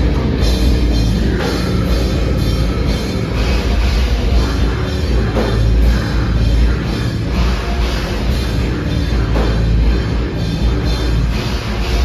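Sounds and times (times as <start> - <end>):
drum kit: 0.0 - 12.0
live rock band playing: 0.0 - 12.0.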